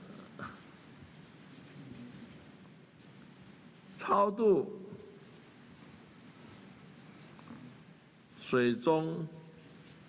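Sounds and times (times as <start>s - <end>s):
marker scratching on board: 0.0s - 4.0s, 5.0s - 7.6s, 8.3s - 8.5s, 9.5s - 10.0s.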